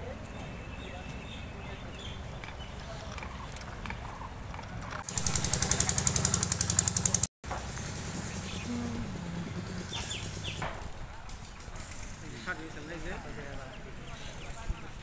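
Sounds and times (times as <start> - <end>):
rapid mechanical motor pulsing: 4.8 - 10.7.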